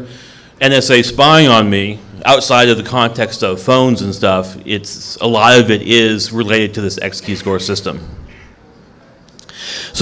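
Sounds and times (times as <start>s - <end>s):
man breathing in: 0.0s - 0.6s, 9.5s - 10.0s
man talking: 0.0s - 8.3s
faint room noise: 0.0s - 10.0s.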